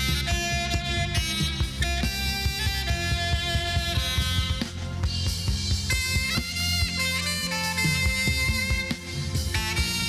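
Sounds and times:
drum kit beat: 0:00.0 - 0:10.0
electric bass: 0:00.0 - 0:10.0
keyboard: 0:00.0 - 0:10.0
saxophone melody: 0:00.0 - 0:10.0.

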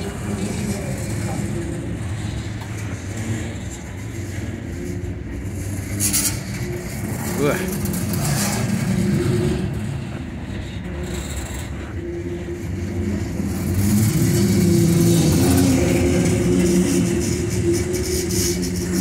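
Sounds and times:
steel wheels rumbling on rail: 0:00.0 - 0:19.0.

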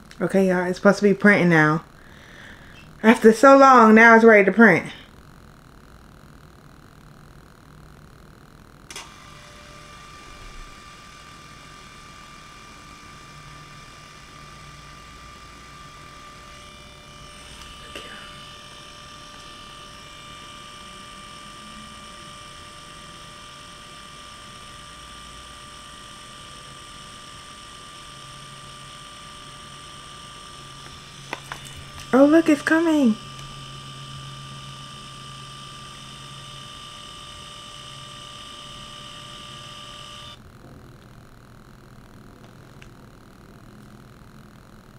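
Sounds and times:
printer feed motor humming: 0:08.9 - 0:40.4.

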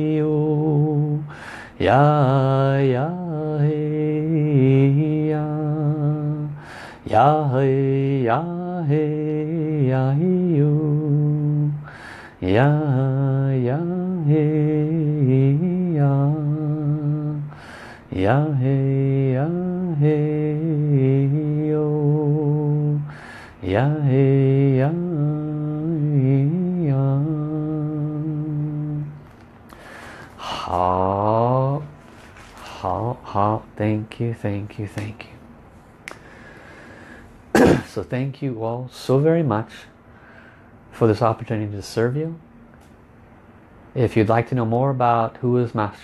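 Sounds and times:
man chanting a held vowel: 0:00.0 - 0:29.2, 0:30.4 - 0:32.0, 0:32.6 - 0:35.4, 0:37.8 - 0:40.0, 0:44.0 - 0:46.0
quick breath: 0:01.3 - 0:01.8, 0:06.6 - 0:07.0, 0:11.9 - 0:12.4, 0:17.5 - 0:18.1, 0:23.1 - 0:23.6, 0:29.7 - 0:30.6, 0:36.1 - 0:37.4, 0:40.1 - 0:40.8.

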